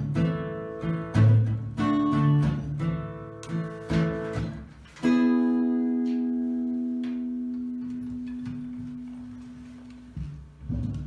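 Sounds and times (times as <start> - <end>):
acoustic guitar chord ringing: 5.0 - 9.6.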